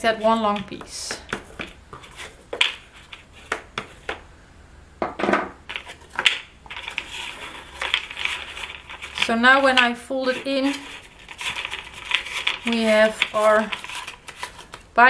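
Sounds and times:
card rustling being folded: 0:05.7 - 0:14.9.

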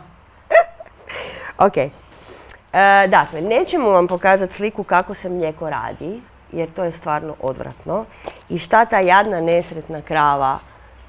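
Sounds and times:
woman speaking: 0:01.4 - 0:10.8.

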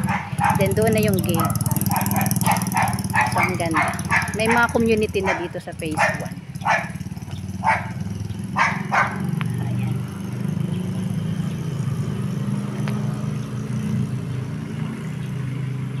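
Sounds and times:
dog barking: 0:00.0 - 0:07.0, 0:07.6 - 0:09.4.

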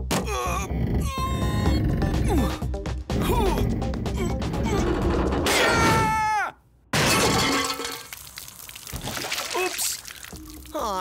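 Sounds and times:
glass bottles shattering: 0:07.0 - 0:08.6.

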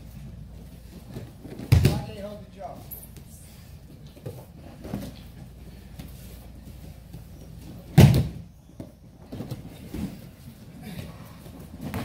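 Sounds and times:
body thud on padded mat: 0:07.9 - 0:08.4.

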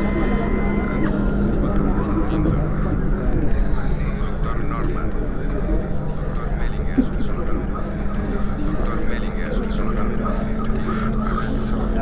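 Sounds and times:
indistinct voices: 0:00.0 - 0:12.0
low hum: 0:00.0 - 0:12.0.

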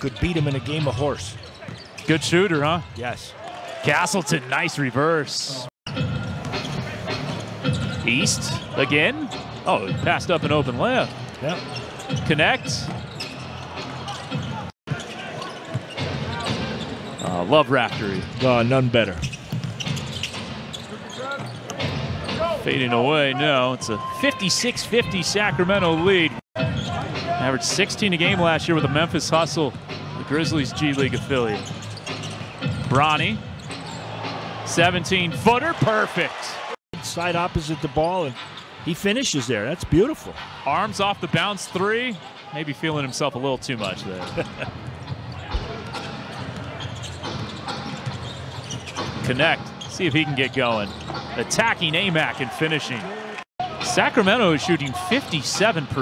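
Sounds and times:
murmur of arena crowd: 0:00.0 - 0:56.0.

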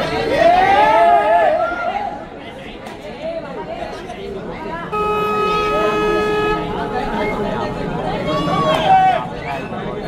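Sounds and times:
crowd chatter: 0:00.0 - 0:10.0
steady horn tone: 0:04.9 - 0:08.6.

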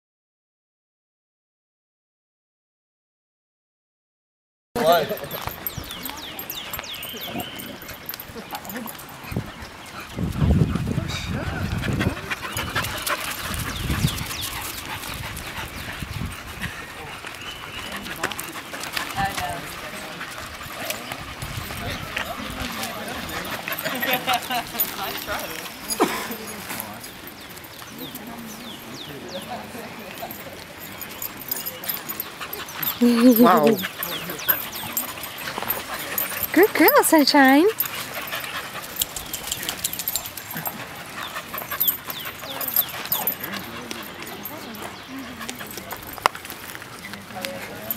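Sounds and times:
dog panting: 0:04.8 - 0:47.9
people talking indistinctly: 0:11.0 - 0:47.9.

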